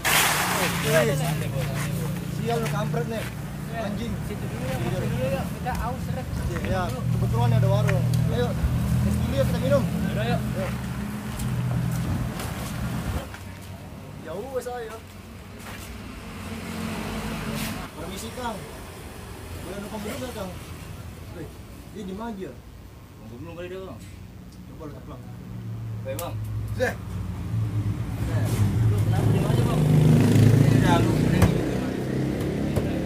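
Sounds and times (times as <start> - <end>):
vehicle engine passing by: 0.0 - 13.4, 15.6 - 20.9, 25.6 - 33.0.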